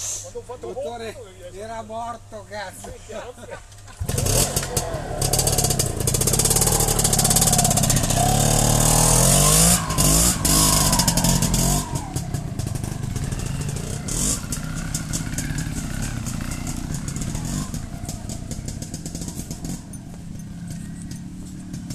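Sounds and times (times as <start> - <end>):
motorcycle engine revving: 3.9 - 21.9.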